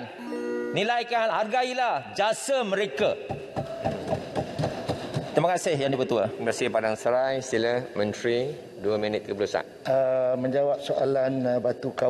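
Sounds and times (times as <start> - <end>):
hands knocking on wooden desks: 3.3 - 5.4.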